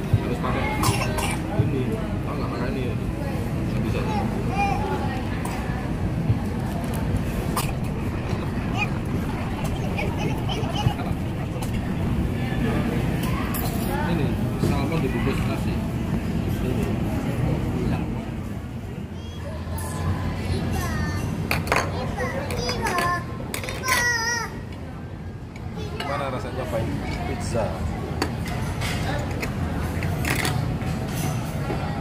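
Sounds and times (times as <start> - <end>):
indistinct chatter of diners: 0.0 - 32.0
steady low hum: 7.2 - 15.3
children chattering and calling out: 7.6 - 13.9.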